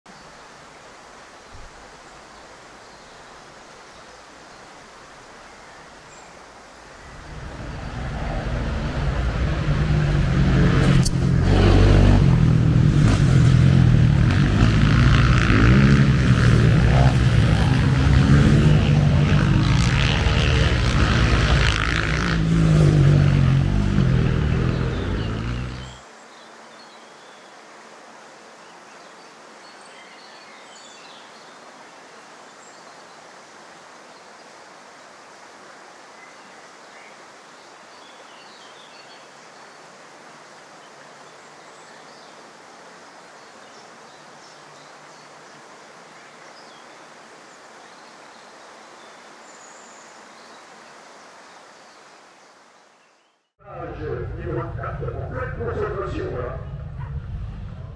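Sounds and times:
faint outdoor ambience: 0:00.1 - 0:57.9
quad bike engines racing: 0:07.1 - 0:26.0.

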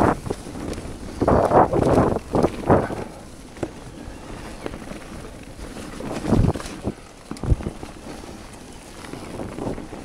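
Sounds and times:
bike tyres rolling on dirt trail: 0:00.0 - 0:10.0
wind buffeting microphone: 0:00.0 - 0:10.0.

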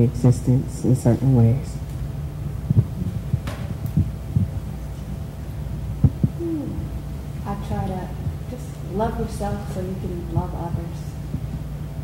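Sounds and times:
low room hum: 0:00.0 - 0:12.0
short wordless vocal sounds: 0:06.2 - 0:07.0.

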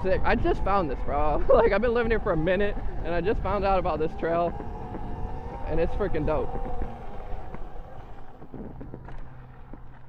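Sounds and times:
electric motorbike hum: 0:00.0 - 0:10.0
wind rumble on microphone: 0:00.0 - 0:10.0
tyre noise: 0:01.5 - 0:10.0.

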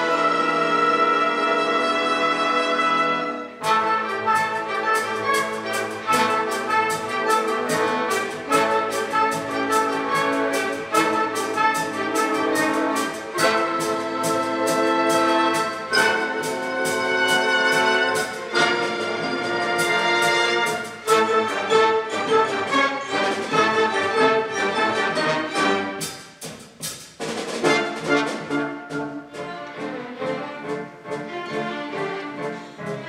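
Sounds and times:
orchestra playing show tune: 0:00.0 - 0:33.0
held brass chord: 0:02.6 - 0:22.1
percussion strikes: 0:03.6 - 0:23.9, 0:26.0 - 0:30.0.

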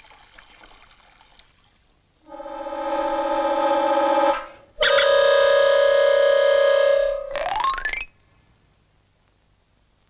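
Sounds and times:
brass-like blast: 0:02.3 - 0:07.3
wind instruments holding a note: 0:02.3 - 0:07.4.

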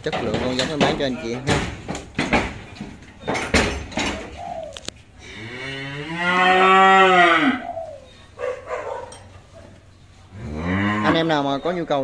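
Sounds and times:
calf mooing: 0:05.2 - 0:07.6, 0:10.3 - 0:11.5.

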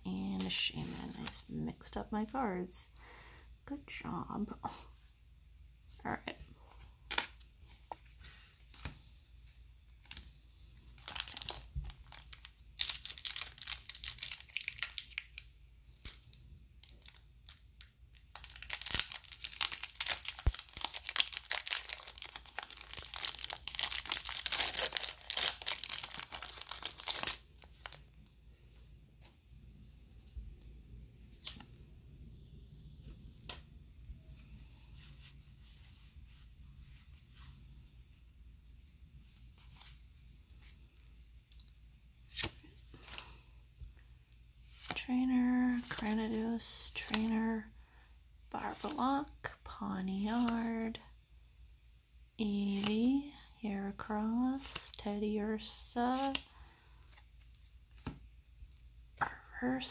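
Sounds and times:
foil wrapper tearing and crinkling: 0:11.0 - 0:17.6, 0:18.2 - 0:28.0.

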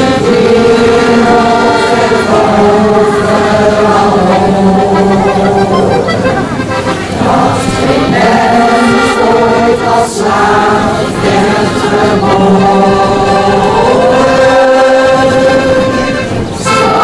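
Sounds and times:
accordion: 0:00.0 - 0:17.0
choir singing held chords: 0:00.0 - 0:17.0.

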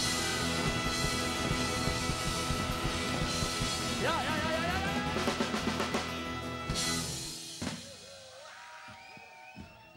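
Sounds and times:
live band ending song: 0:00.0 - 0:07.8.

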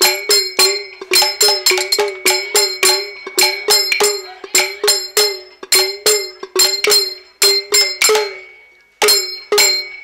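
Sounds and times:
bells jingling: 0:00.0 - 0:10.0.

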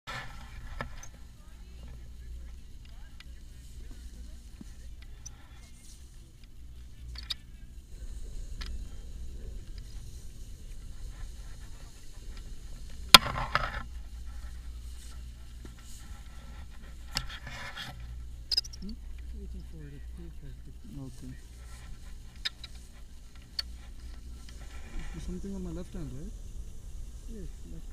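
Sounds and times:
low wind rumble on microphone: 0:00.1 - 0:27.9.

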